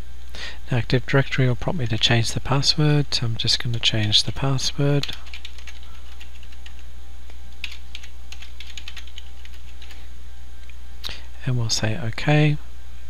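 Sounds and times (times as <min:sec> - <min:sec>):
steady low hum: 0:00.0 - 0:13.0
computer keyboard key clicks: 0:07.6 - 0:10.0.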